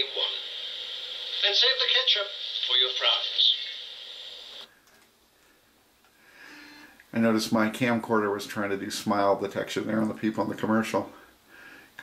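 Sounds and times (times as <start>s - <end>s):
high-pitched speaker hiss: 0.0s - 4.7s.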